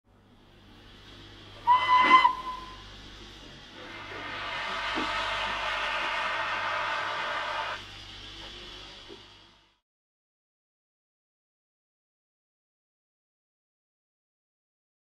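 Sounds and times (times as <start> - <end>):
hiss of escaping steam: 0.9 - 9.8
steam locomotive whistle: 1.6 - 3.0, 3.8 - 7.8.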